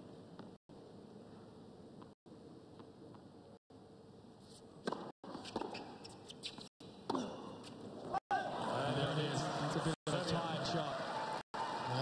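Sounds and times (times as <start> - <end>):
faint tennis court ambience: 0.0 - 12.0.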